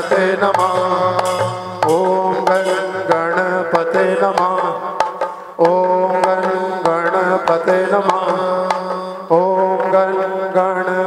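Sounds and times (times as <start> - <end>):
drum beat: 0.0 - 8.4
man singing: 0.0 - 11.0
low drone: 0.4 - 3.8.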